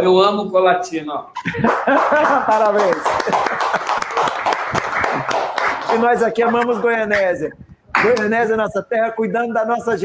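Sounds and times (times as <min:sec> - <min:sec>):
people clapping: 0:01.5 - 0:07.2.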